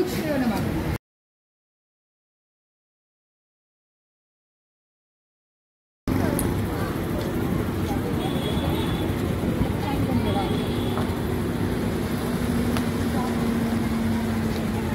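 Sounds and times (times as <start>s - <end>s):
people talking: 0.0s - 1.0s, 6.1s - 14.9s
street traffic: 0.0s - 1.0s, 6.1s - 14.9s
car engine running: 6.1s - 14.9s.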